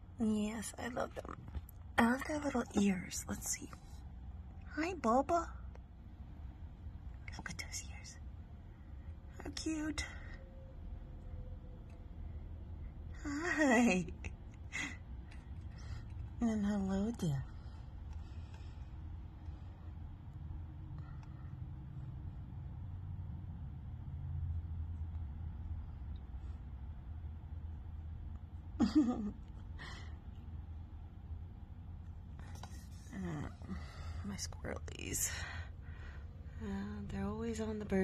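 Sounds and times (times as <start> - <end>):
low steady rumble: 0.0 - 38.0
woman whispering: 0.2 - 4.0, 4.6 - 5.7, 7.1 - 8.4, 9.3 - 10.4, 32.9 - 35.7.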